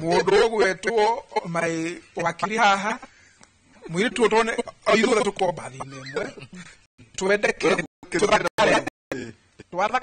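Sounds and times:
men talking: 0.0s - 10.0s.

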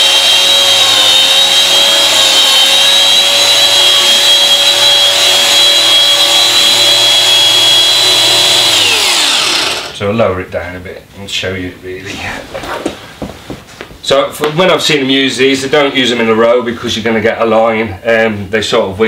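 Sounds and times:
carpet shearing machine whining: 0.0s - 10.0s
motor winding down: 0.0s - 10.0s.

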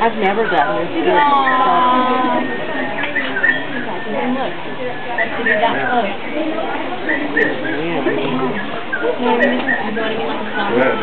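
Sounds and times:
indistinct chatter: 0.0s - 11.0s.

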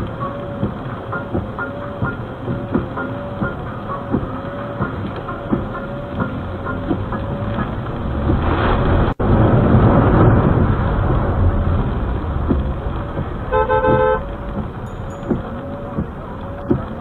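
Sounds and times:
windscreen wipers squeaking and clicking: 0.0s - 9.2s, 11.4s - 17.0s
steady rushing noise: 0.0s - 17.0s.

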